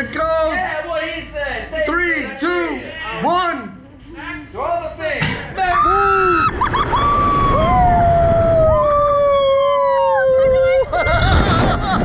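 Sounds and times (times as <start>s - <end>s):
people screaming: 5.6s - 12.0s
wind rushing over microphone: 5.6s - 12.0s.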